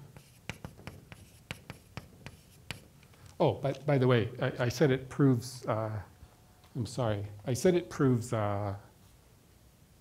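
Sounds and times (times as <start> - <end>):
chalk tapping and scraping on blackboard: 0.0 - 3.1.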